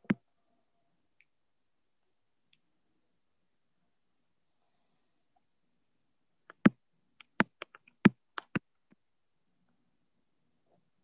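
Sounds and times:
computer keyboard clicking: 0:06.5 - 0:08.6.

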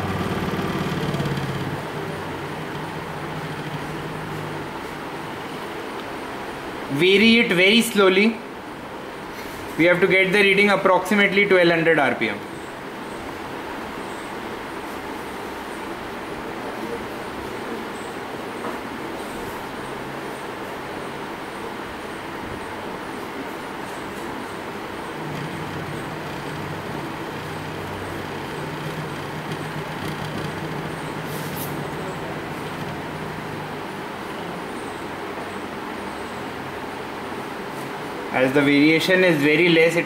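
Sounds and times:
small motor whirring: 0:00.0 - 0:04.8
low humming tone: 0:00.0 - 0:05.6, 0:24.4 - 0:35.6.

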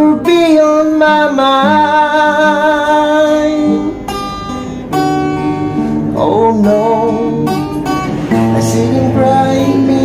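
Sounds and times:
acoustic guitar chords: 0:00.0 - 0:10.0.

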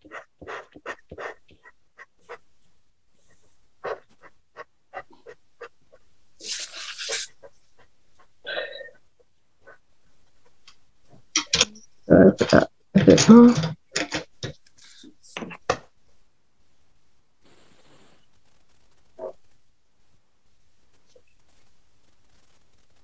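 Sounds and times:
pencil scratching on paper: 0:00.0 - 0:02.4, 0:06.4 - 0:07.9, 0:21.4 - 0:23.0
brief hiss: 0:17.4 - 0:18.3.

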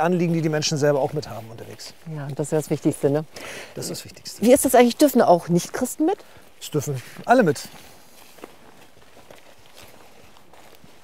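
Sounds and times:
footsteps on dirt track: 0:00.0 - 0:11.0.

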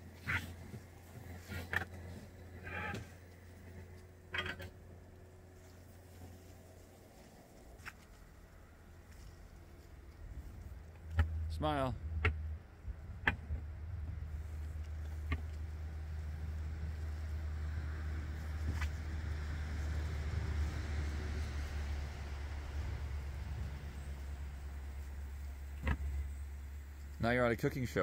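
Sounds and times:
low mechanical hum: 0:00.0 - 0:28.0.

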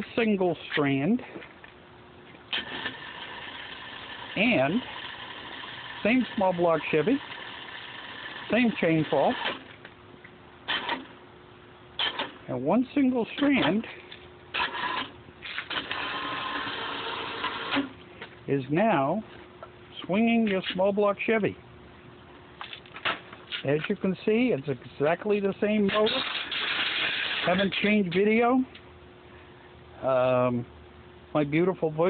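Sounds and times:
motor running with faint whine: 0:02.2 - 0:10.0, 0:13.7 - 0:20.2
chain clattering through hoist: 0:25.9 - 0:27.9.

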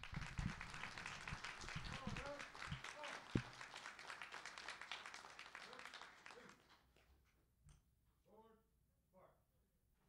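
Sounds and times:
audience applause: 0:00.0 - 0:06.6.

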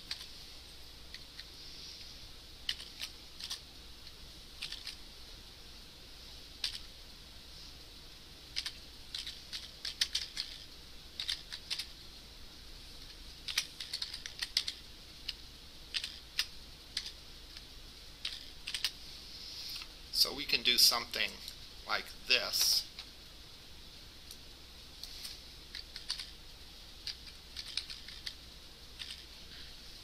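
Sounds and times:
faint hiss: 0:00.0 - 0:30.0
typing on a keyboard: 0:02.7 - 0:03.6, 0:04.6 - 0:05.0, 0:08.6 - 0:10.6, 0:11.2 - 0:11.9, 0:13.5 - 0:14.8, 0:15.9 - 0:17.1, 0:18.2 - 0:18.9, 0:25.8 - 0:26.3, 0:27.0 - 0:28.4, 0:29.0 - 0:29.2.

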